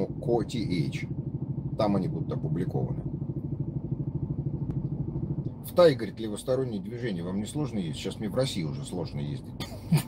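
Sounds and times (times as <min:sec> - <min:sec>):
motorcycle engine idling: 0:00.0 - 0:09.9.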